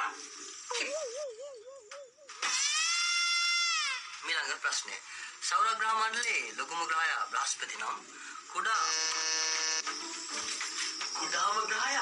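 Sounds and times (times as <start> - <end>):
flat electric buzz: 8.7 - 11.9.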